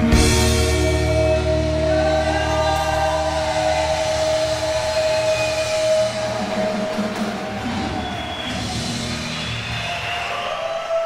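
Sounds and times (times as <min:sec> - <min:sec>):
rock closing chord ringing out: 0:00.0 - 0:07.8.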